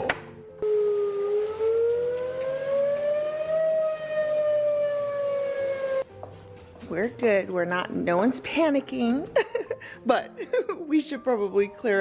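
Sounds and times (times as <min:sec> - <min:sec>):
warning siren wailing: 0:00.6 - 0:06.0.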